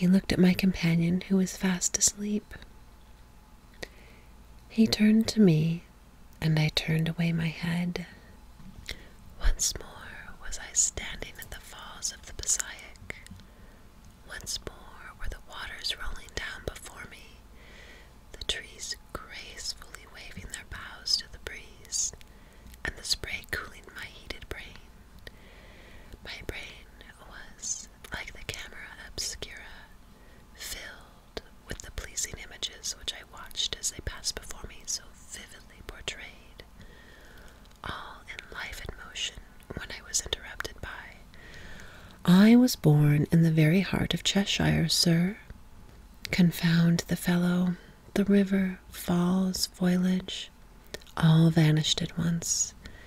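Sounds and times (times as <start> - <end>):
woman speaking: 0.0 - 2.6, 4.7 - 8.2, 42.2 - 45.5, 46.3 - 52.8
woman whispering: 0.0 - 2.7, 4.7 - 8.3, 9.4 - 13.3, 14.3 - 17.4, 18.3 - 22.2, 22.8 - 24.9, 26.2 - 30.0, 30.6 - 36.7, 37.8 - 41.3, 42.2 - 45.5, 46.3 - 52.8.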